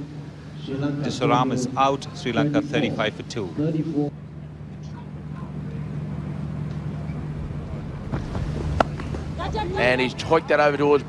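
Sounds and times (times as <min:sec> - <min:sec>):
low outdoor ambience hum: 0:00.0 - 0:11.0
cricket bat striking ball: 0:08.1 - 0:09.4.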